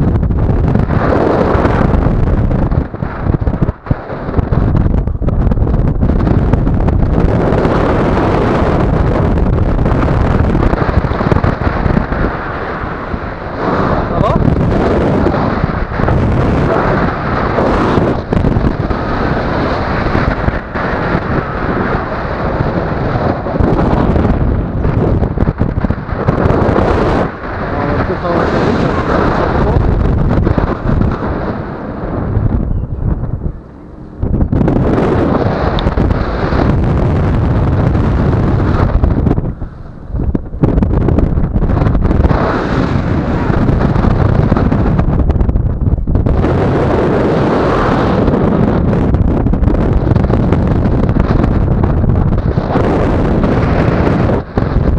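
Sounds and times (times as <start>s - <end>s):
wind buffeting microphone: 0.0s - 54.9s.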